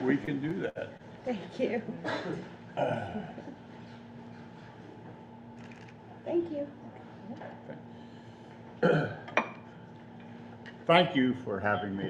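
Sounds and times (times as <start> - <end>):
throaty vocal noise: 2.8 - 3.5.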